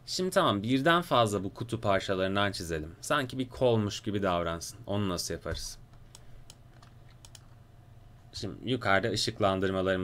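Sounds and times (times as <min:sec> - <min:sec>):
computer keyboard clicks: 0:05.9 - 0:07.6.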